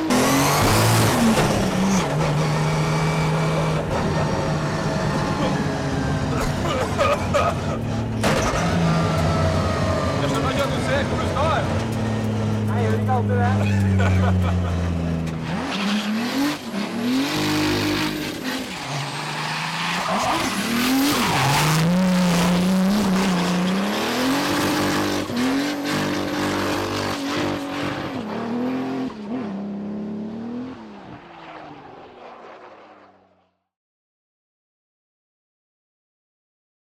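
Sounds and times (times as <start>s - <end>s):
car engine revving: 0.0s - 33.4s
tyres squealing and skidding: 14.8s - 29.4s.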